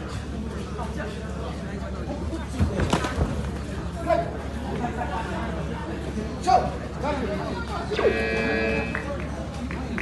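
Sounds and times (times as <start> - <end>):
voices and chatter: 0.0 - 10.0
steady buzzer tone: 7.9 - 9.1.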